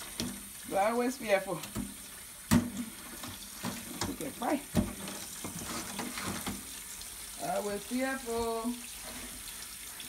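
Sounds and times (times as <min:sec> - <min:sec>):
tap running into sink: 0:00.0 - 0:00.4, 0:01.5 - 0:06.8.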